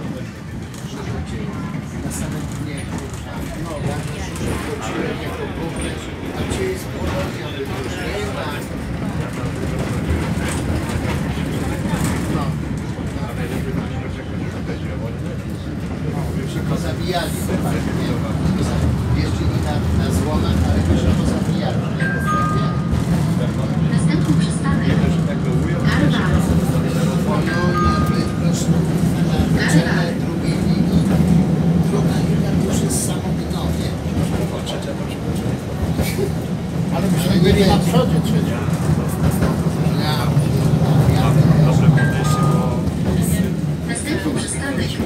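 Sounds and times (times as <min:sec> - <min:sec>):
people talking: 0:00.0 - 0:45.0
tram rumbling on rails: 0:00.0 - 0:45.0.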